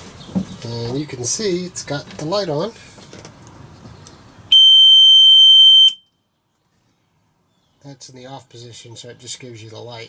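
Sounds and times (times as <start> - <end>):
high-pitched alarm beep: 4.5 - 6.0.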